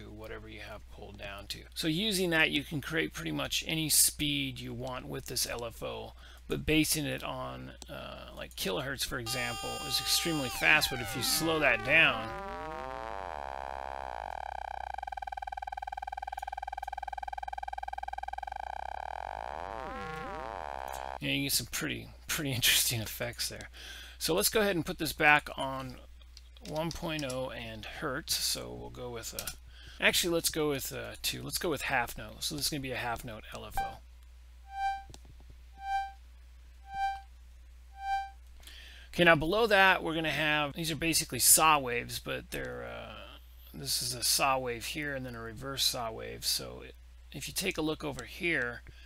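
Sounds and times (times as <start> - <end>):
synthesized organ note fluttering: 9.2 - 21.2, 34.7 - 35.1, 35.8 - 36.2, 36.8 - 37.2, 38.0 - 38.4.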